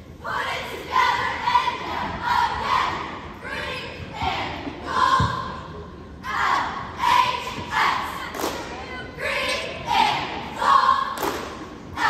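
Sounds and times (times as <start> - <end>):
cheerleaders shouting a cheer: 0.2 - 12.0.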